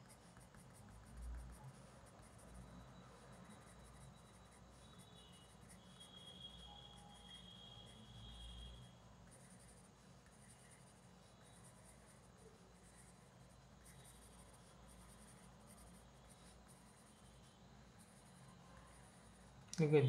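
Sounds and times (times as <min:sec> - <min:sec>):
pencil scratching on paper: 0:00.0 - 0:19.7.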